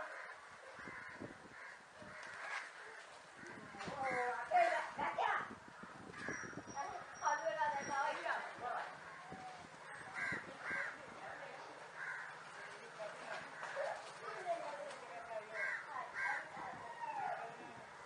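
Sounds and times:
faint background voices: 0.0 - 18.0.

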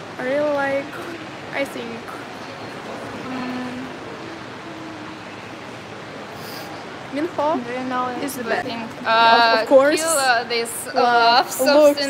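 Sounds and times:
shopping mall hum: 0.0 - 12.0.

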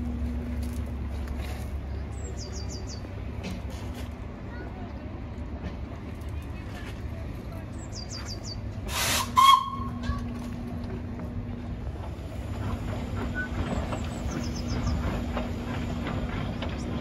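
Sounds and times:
steam hissing: 8.8 - 9.6.

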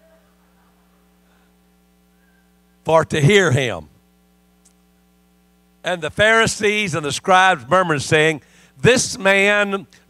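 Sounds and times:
faint electrical hum: 0.0 - 10.0
man's voice: 2.9 - 3.9, 5.9 - 9.9.

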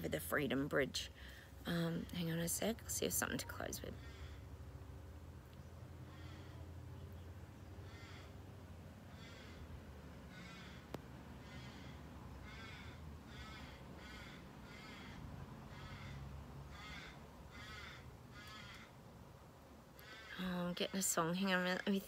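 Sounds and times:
faint low hum: 0.0 - 22.0
crows cawing: 3.9 - 4.7, 6.0 - 6.7, 7.8 - 19.0, 19.9 - 21.6.

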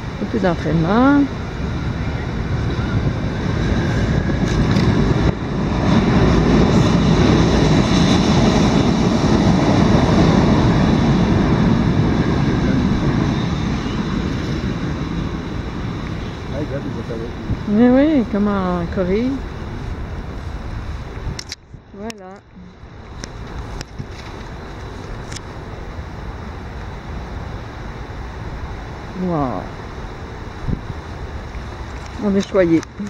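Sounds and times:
wind rushing over microphone: 0.0 - 33.0.

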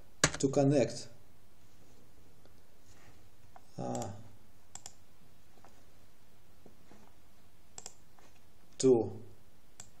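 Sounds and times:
computer mouse clicks: 3.8 - 5.0, 7.8 - 8.0, 9.8 - 10.0.

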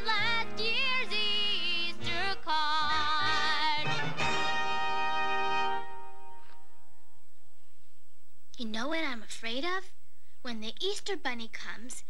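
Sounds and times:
girl singing with vibrato: 0.0 - 4.1
instrumental accompaniment: 0.0 - 7.2.

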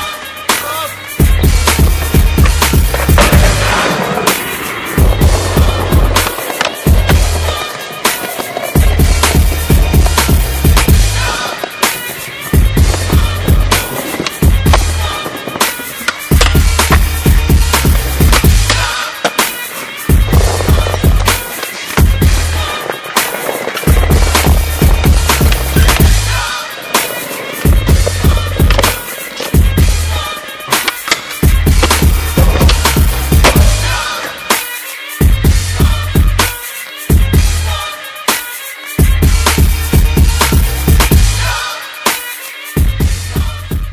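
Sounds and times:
backing music with beat and bass: 0.0 - 43.9
skateboard wheels rolling on stone: 0.1 - 43.9
skateboard clacks: 0.5 - 34.8.

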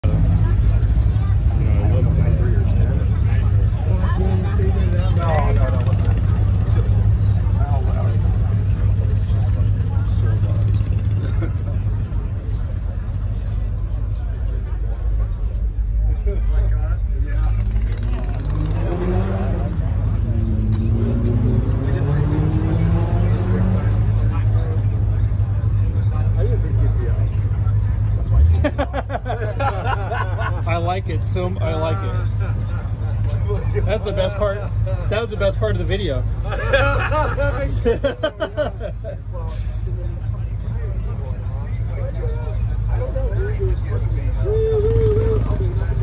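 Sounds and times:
people talking: 0.0 - 46.0
car engine idling: 22.4 - 46.0.

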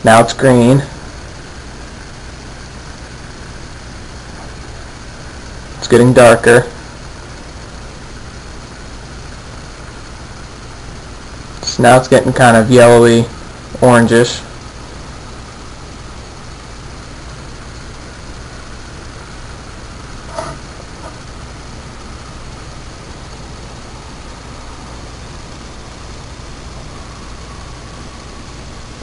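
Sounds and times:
background hiss: 0.0 - 29.0
low hum: 0.0 - 29.0.

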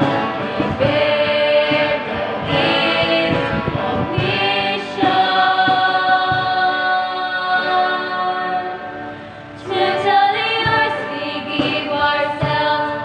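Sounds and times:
group singing worship song: 0.0 - 13.0.

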